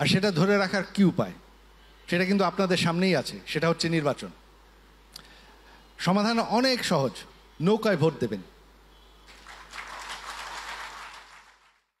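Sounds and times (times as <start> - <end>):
audience applause: 9.3 - 11.9.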